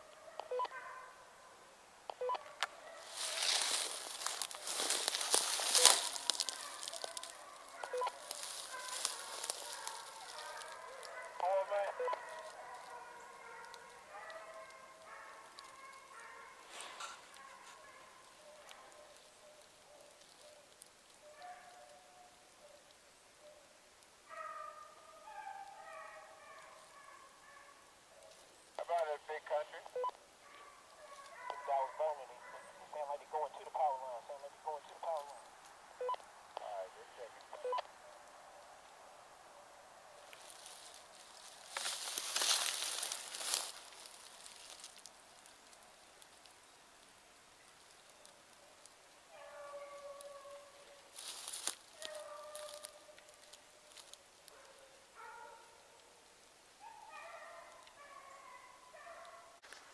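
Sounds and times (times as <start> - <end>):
hunting dogs baying: 0.0 - 1.6, 2.2 - 23.7, 24.3 - 38.8, 48.2 - 56.1, 56.8 - 59.6.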